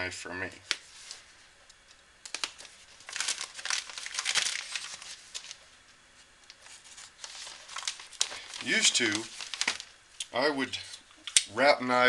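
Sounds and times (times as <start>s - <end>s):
newspaper crumpling in a box: 2.3s - 5.6s, 6.6s - 9.9s.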